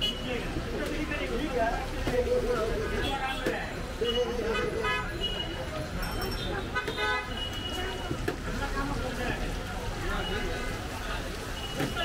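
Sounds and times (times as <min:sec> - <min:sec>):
people talking: 0:00.0 - 0:12.0
traffic noise: 0:00.0 - 0:12.0.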